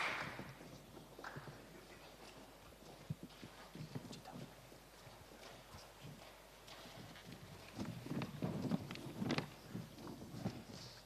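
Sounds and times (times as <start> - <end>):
footsteps of hard shoes on stage: 0.0 - 11.0.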